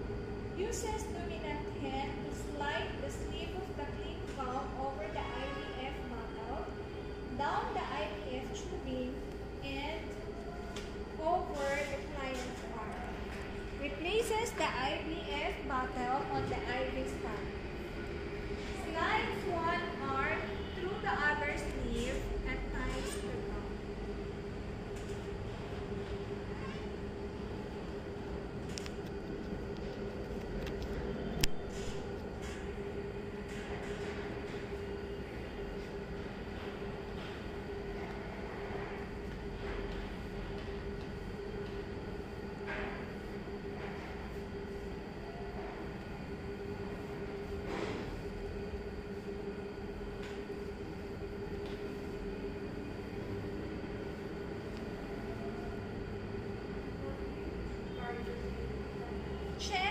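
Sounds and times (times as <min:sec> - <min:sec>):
steady room hum: 0:00.0 - 0:59.9.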